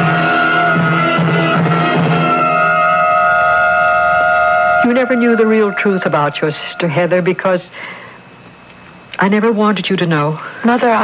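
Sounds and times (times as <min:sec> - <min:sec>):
dramatic music sustained chord: 0:00.0 - 0:07.7
voice: 0:04.8 - 0:07.9, 0:09.2 - 0:11.0.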